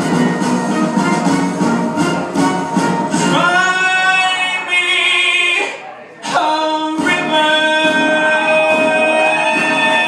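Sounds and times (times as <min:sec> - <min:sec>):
backing music: 0:00.0 - 0:10.0
man singing jazz ballad: 0:03.2 - 0:10.0.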